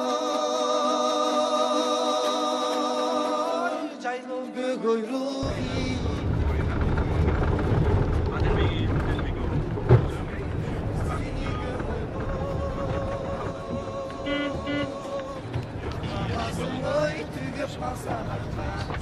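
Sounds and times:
vehicle rumble from inside: 0:05.4 - 0:19.0
long steady tone: 0:12.5 - 0:15.3.

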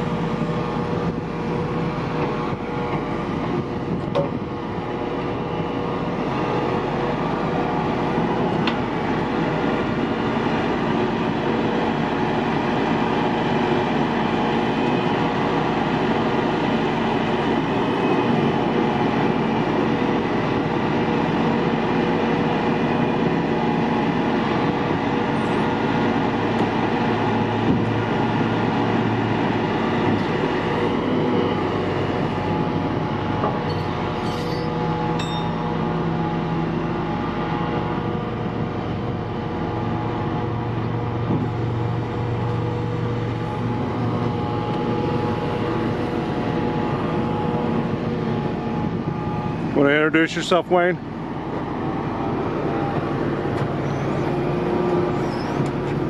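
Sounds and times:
diesel engine at raised idle: 0:00.0 - 0:56.0.

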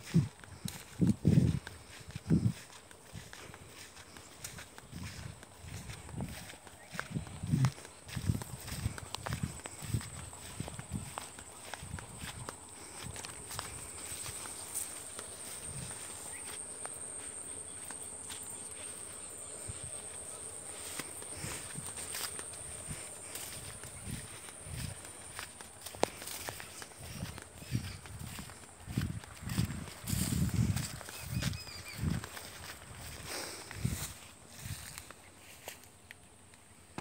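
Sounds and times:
footsteps on dry leaves: 0:00.0 - 0:35.9
dry leaves and stalks crackling: 0:00.0 - 0:36.6.

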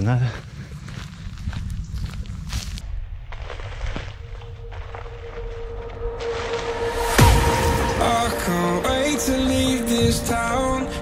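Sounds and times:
footsteps on a dirt track: 0:00.0 - 0:07.2
wind rumble on microphone: 0:00.5 - 0:07.9.

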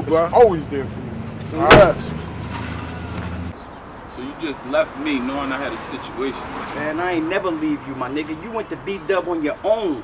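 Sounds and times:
car trunk lid slamming: 0:01.6 - 0:02.8.

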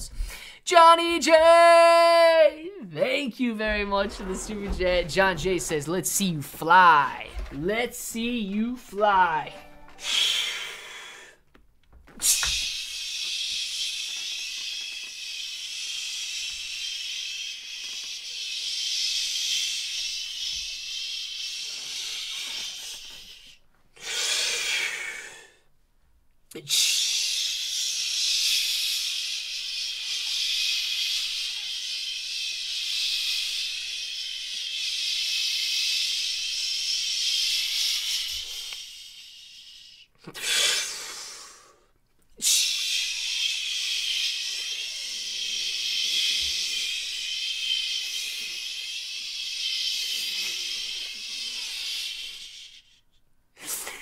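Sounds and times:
gasping breath in: 0:10.0 - 0:11.4, 0:21.5 - 0:25.7
man hissing exhale: 0:10.0 - 0:11.4, 0:12.2 - 0:25.7, 0:26.6 - 0:53.0.

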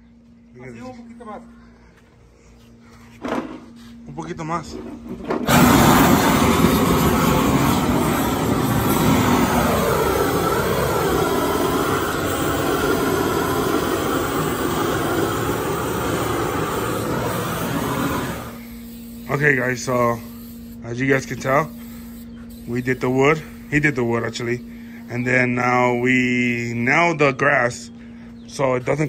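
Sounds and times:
propane torch burning: 0:05.1 - 0:26.3.

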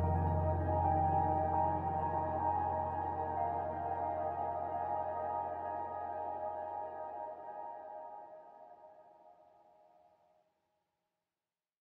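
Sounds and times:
ambient music with sustained tones: 0:00.0 - 0:09.3.

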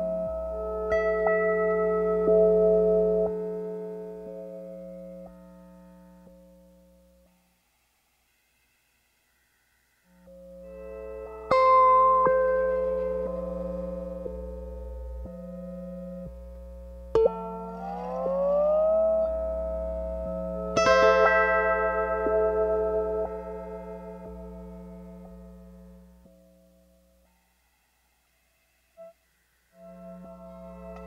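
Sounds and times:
lap steel guitar notes: 0:00.0 - 0:06.6, 0:10.3 - 0:26.7, 0:29.8 - 0:31.0
guitar drone: 0:10.3 - 0:26.3, 0:29.8 - 0:31.0.

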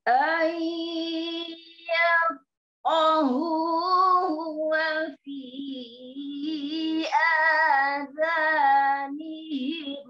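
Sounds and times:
woman chanting recitation: 0:00.0 - 0:10.0.

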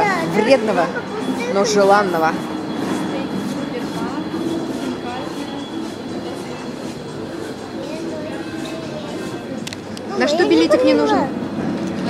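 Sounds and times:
faint distant voices: 0:00.0 - 0:12.0
rumbling food court noise: 0:00.0 - 0:12.0.

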